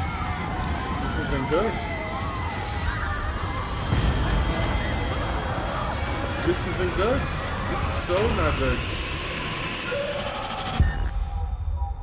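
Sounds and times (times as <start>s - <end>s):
dense rumbling soundtrack: 0.0s - 12.0s
heavy boom: 2.4s - 9.4s.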